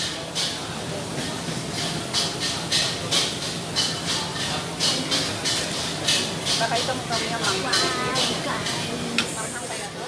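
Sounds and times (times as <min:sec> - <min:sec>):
food court din: 0:00.0 - 0:10.0.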